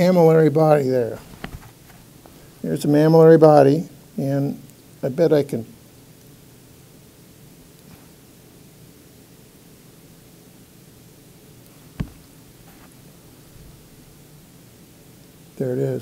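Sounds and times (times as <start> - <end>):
faint room hiss: 0.0 - 16.0.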